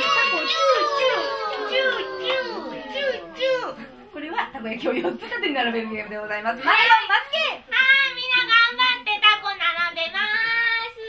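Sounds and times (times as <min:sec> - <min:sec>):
hand clapping: 0:00.0 - 0:03.1.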